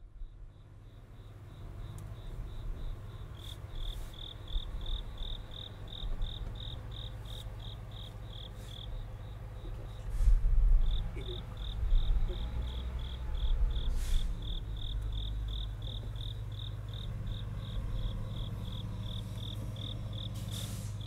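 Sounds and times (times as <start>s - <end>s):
cricket chirping: 0.0s - 10.2s, 10.8s - 21.0s.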